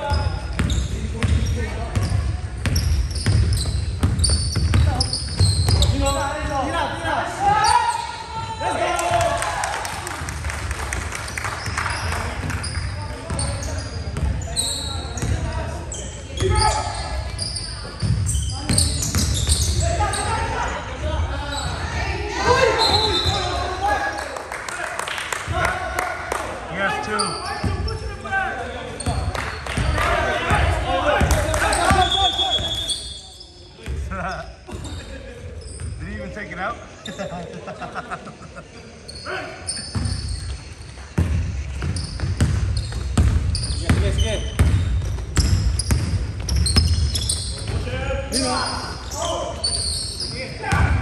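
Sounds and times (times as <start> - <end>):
sneaker squeaks: 0.0 - 6.8, 7.4 - 8.5, 11.3 - 23.7, 27.0 - 30.6, 31.2 - 37.4, 39.0 - 51.0
basketball bouncing on hardwood: 41.2 - 44.0.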